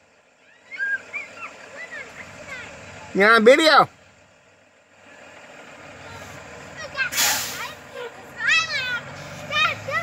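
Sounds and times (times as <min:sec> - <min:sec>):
bus engine idling: 0:00.0 - 0:10.0
air brakes hissing: 0:06.2 - 0:07.9.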